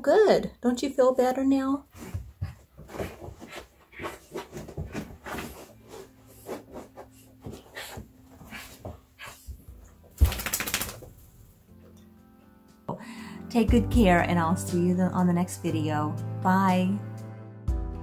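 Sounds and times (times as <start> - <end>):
dog scuffing on carpet: 1.9 - 9.9.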